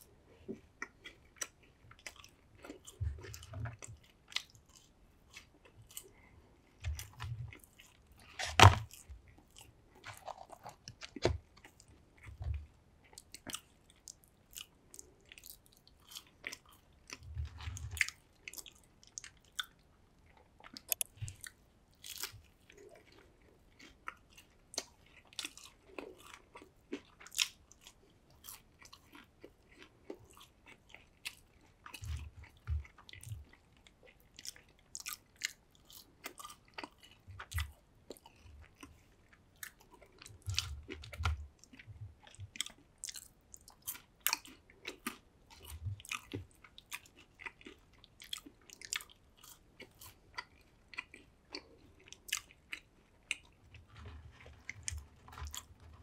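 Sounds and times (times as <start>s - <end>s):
chewing and crunching fries: 0.0s - 56.0s
wet mouth clicks: 20.7s - 21.5s.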